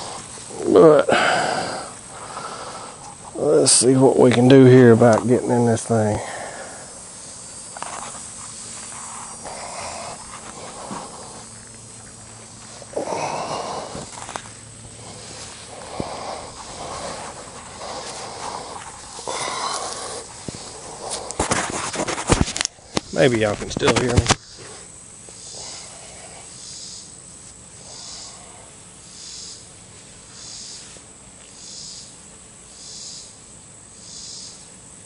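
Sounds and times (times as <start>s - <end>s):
microphone handling clicks and knocks: 20.4s - 24.4s.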